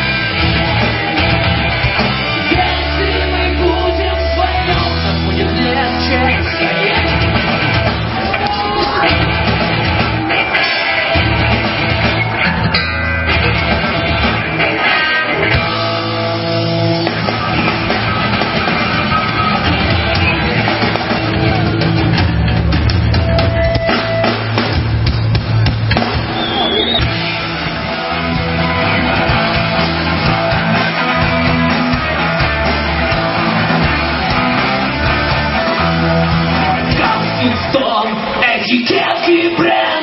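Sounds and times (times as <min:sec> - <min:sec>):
held bass notes: 0:00.0 - 0:38.8
blues-rock band playing: 0:00.0 - 0:40.0
electric guitar: 0:00.0 - 0:40.0.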